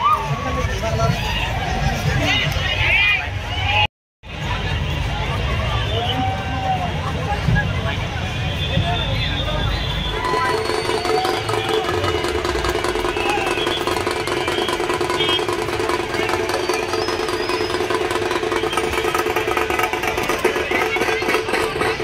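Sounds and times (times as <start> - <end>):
drum troupe playing fast beat: 10.1 - 22.0.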